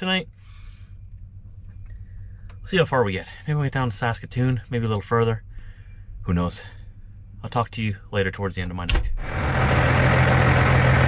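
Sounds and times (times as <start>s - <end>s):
diesel truck engines idling: 9.2s - 11.0s.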